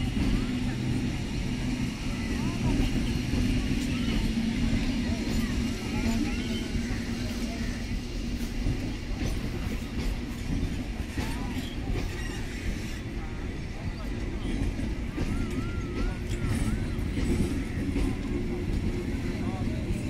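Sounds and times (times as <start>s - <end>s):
rail clicks: 0.0s - 20.0s
train wheels rumbling on rails: 0.0s - 20.0s.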